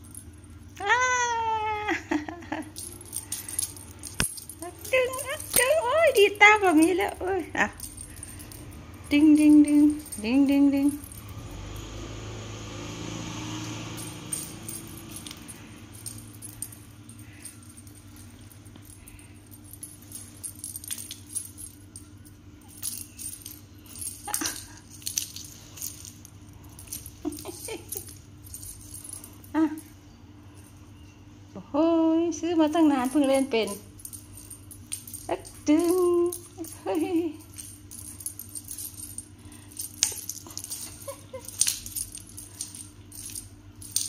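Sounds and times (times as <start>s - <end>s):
cat toy jingling and rattling: 1.9s - 31.0s, 32.5s - 44.0s.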